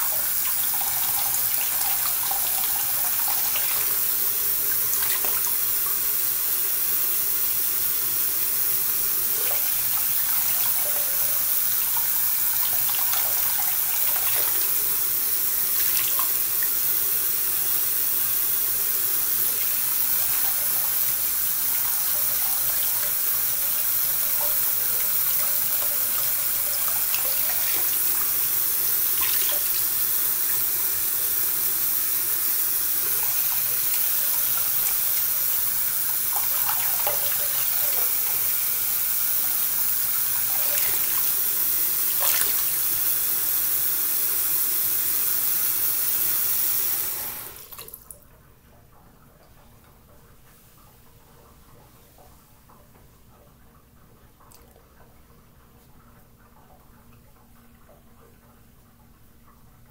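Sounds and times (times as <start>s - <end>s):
sink tap running: 0.0s - 48.1s
water splashing: 42.1s - 42.8s.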